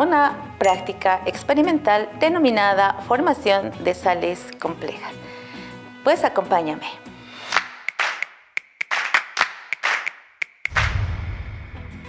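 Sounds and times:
clap-like hits and clicks: 7.4s - 11.0s
loud low bass music: 10.7s - 12.0s.

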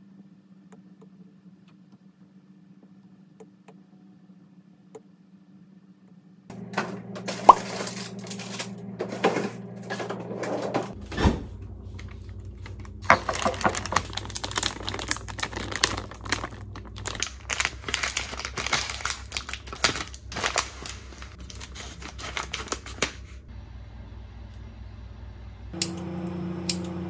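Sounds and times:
plastic packaging crinkling and tearing: 7.3s - 8.8s, 11.9s - 23.4s.

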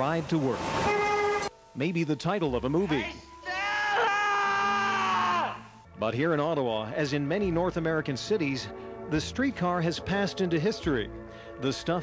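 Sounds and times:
man yelling: 0.9s - 1.5s, 2.8s - 5.7s.

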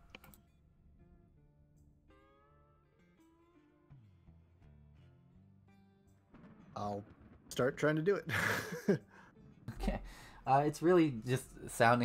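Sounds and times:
faint music with slow held notes: 0.0s - 6.6s.

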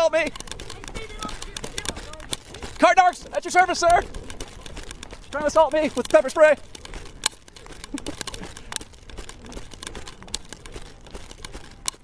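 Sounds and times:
wheels rolling over rough asphalt: 0.0s - 12.0s.

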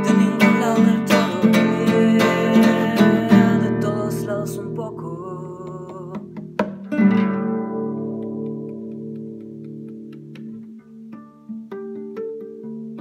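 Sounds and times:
acoustic guitar: 0.0s - 13.0s.

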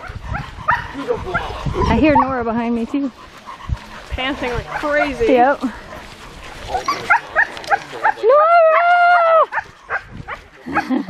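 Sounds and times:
dog yipping: 0.0s - 2.4s.

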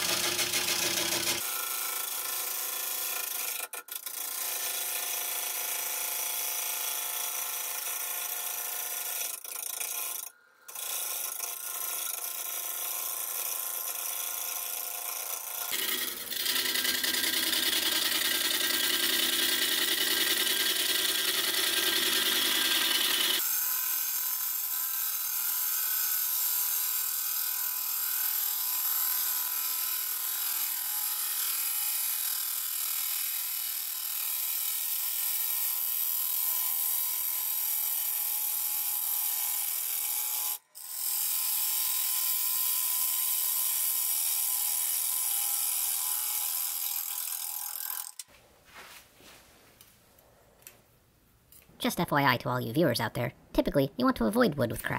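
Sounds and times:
wood lathe running: 0.0s - 6.0s, 8.8s - 23.4s
gouge cutting wood: 8.1s - 23.4s.

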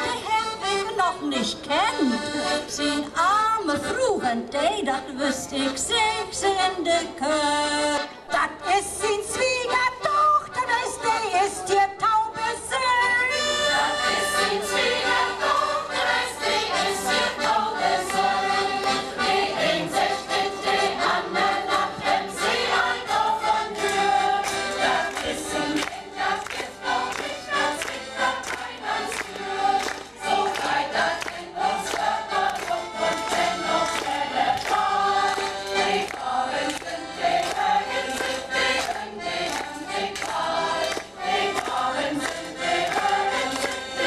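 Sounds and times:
choir of women and children singing: 12.4s - 44.0s.

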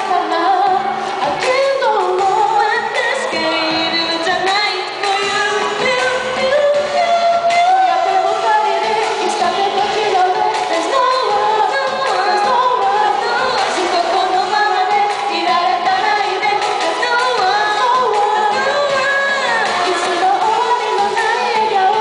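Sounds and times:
karaoke backing track: 0.0s - 22.0s
women singing pop duet: 0.0s - 22.0s.

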